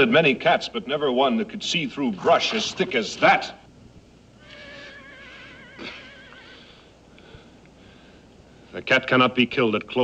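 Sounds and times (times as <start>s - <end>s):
horse whinnying: 4.4s - 6.6s.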